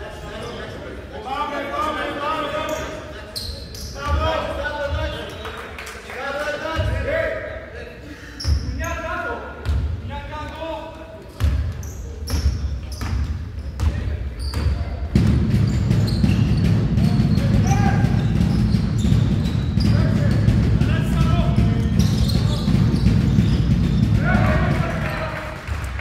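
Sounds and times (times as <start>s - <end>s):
sneakers squeaking: 2.6s - 4.3s, 8.4s - 9.8s, 11.3s - 25.1s.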